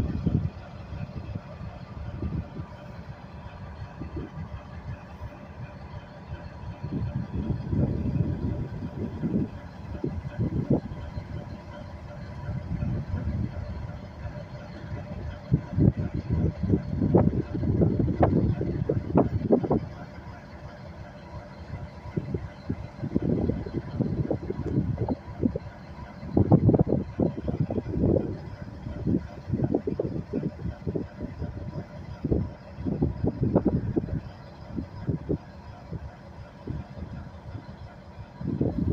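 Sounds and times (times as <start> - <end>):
locomotive hum and rumble: 0.0 - 38.9.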